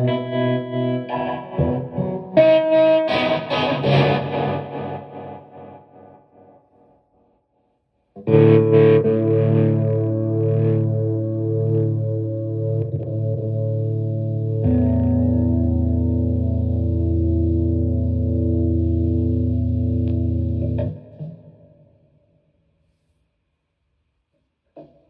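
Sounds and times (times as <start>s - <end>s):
distorted electric guitar chord: 0.0s - 6.0s, 8.3s - 21.0s.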